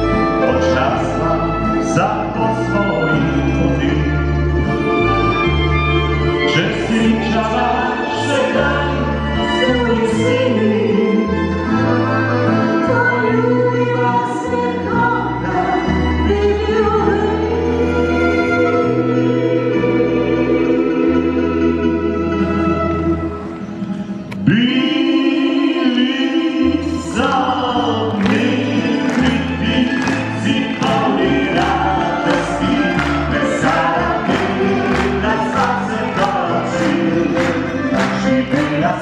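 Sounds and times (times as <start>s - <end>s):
accordion: 0.0s - 39.0s
folk-pop band playing: 0.0s - 39.0s
violin: 0.0s - 39.0s
man and woman singing duet: 5.8s - 11.7s, 24.4s - 39.0s
bass line: 26.7s - 39.0s.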